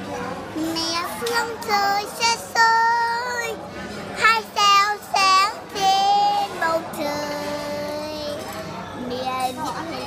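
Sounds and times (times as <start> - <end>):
girl singing a slow song: 0.5 - 3.6, 4.2 - 10.0.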